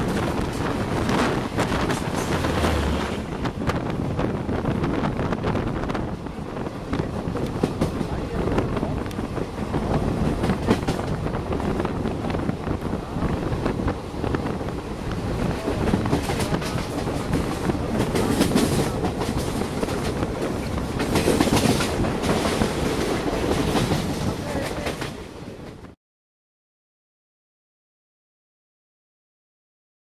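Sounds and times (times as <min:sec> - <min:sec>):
train coach rumble: 0:00.0 - 0:26.0
wheels clattering over rail joints: 0:15.5 - 0:25.2.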